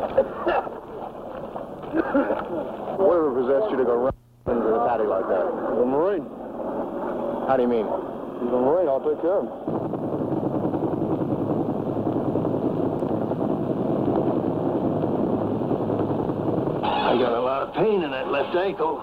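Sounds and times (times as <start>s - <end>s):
mechanical drone with flutter: 5.2s - 18.9s.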